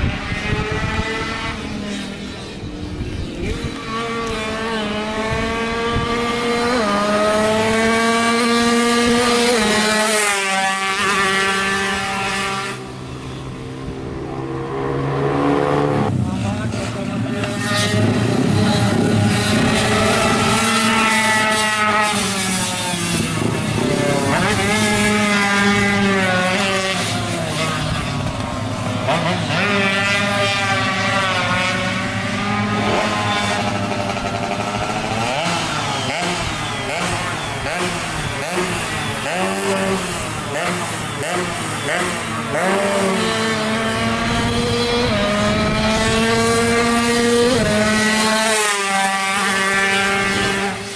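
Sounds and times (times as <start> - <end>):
two-stroke motorcycle racing: 0.0 - 50.9.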